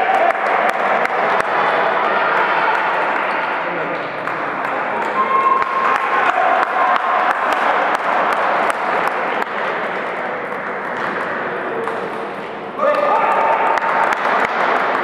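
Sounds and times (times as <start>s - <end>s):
crowd chatter: 0.0s - 15.0s.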